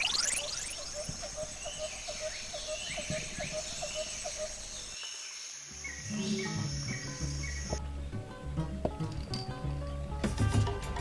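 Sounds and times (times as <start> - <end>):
birds whistling: 0.0 - 4.9, 5.8 - 7.8
high insect drone: 0.0 - 7.8.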